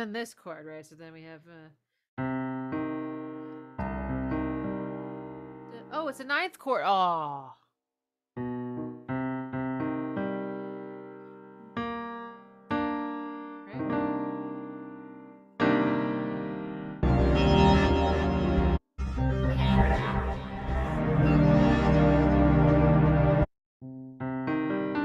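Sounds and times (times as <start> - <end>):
digital piano chords: 2.2 - 5.9, 8.4 - 23.5
music with heavy low end: 17.0 - 23.5.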